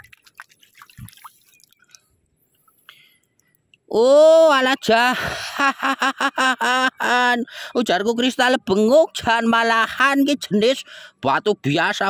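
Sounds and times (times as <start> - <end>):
water dripping and splashing: 0.0 - 2.1.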